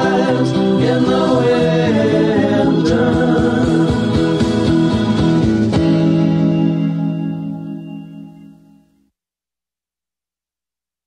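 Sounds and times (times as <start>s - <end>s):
voices singing in harmony: 0.0s - 5.7s
rock band playing: 0.0s - 8.4s.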